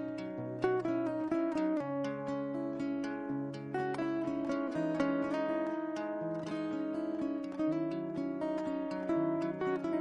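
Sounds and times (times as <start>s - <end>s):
acoustic guitar melody: 0.0s - 10.0s.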